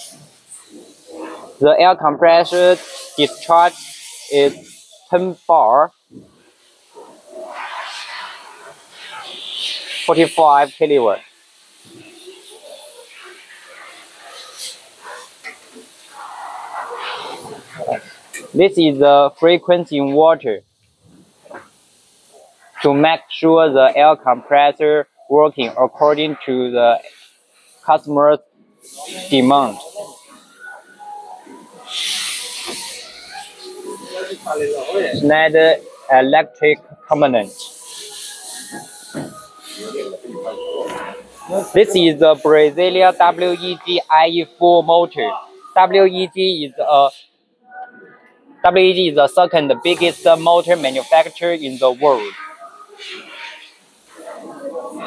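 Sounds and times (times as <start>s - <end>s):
soft hissing rush: 0.0s - 47.3s, 48.7s - 55.0s
faint low murmuring: 28.7s - 47.2s
brief hiss: 28.8s - 36.0s.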